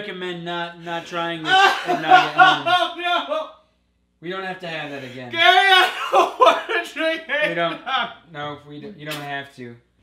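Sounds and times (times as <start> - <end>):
man speaking loudly: 0.0 - 3.5, 4.3 - 9.3.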